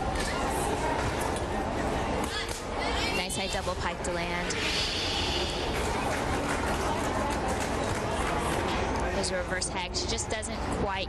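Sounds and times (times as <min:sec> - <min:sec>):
echoing crowd voices: 0:00.0 - 0:11.0.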